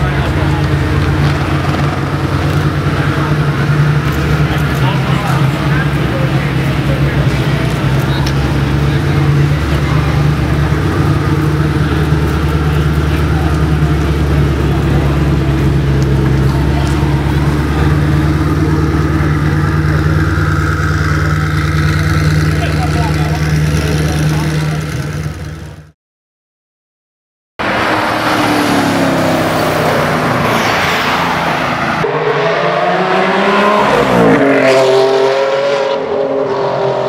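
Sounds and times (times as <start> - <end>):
people talking: 0.0 - 25.3
car engine idling: 0.0 - 25.9.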